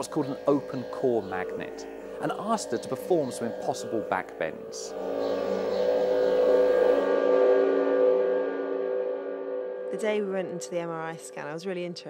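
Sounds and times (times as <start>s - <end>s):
drone of held tones: 0.0s - 12.0s.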